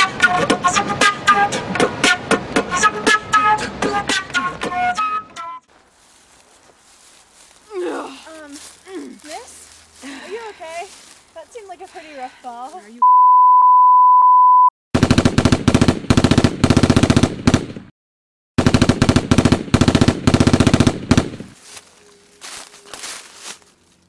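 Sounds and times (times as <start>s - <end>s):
high beep tone: 13.0s - 14.7s
machine-gun fire: 15.0s - 17.9s, 18.6s - 21.6s.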